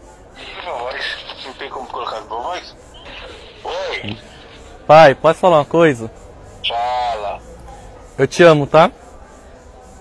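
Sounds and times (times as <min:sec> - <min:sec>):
voices over phone call: 0:00.2 - 0:07.6.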